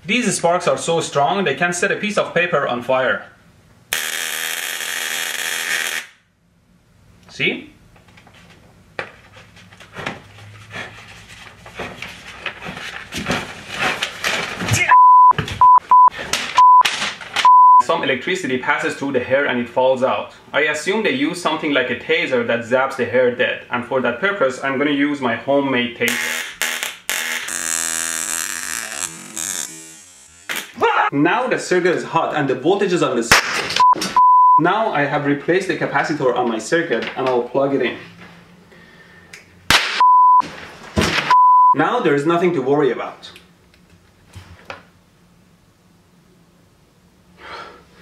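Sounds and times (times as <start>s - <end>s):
electric arc buzzing crackle: 3.9s - 6.3s, 26.1s - 30.8s.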